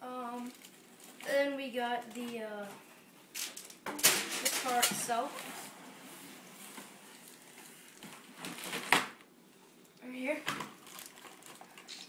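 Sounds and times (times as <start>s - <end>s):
plastic bag crinkling: 0.4s - 1.3s, 10.6s - 12.0s.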